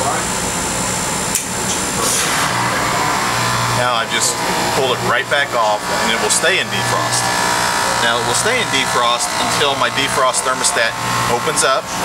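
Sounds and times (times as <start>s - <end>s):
heat pump unit humming: 0.0s - 12.0s
sharp click: 1.3s - 1.8s.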